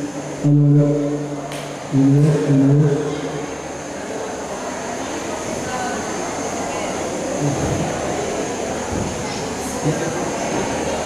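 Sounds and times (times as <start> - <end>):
crowd murmur in a hall: 0.0 - 11.0.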